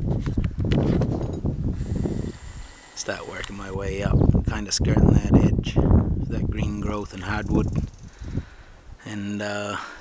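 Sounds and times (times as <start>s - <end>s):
microphone handling rustle: 0.0s - 2.6s, 3.2s - 8.5s.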